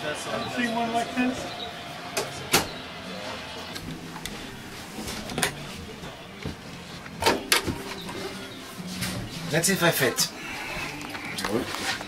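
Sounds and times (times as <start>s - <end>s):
murmur of background voices: 0.0s - 12.0s.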